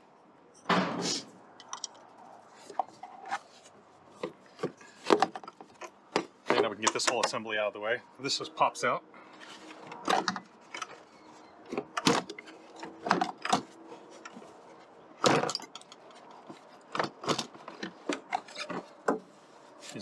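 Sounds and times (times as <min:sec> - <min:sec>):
plastic parts knocking and rubbing: 0:02.6 - 0:07.4, 0:09.4 - 0:20.0.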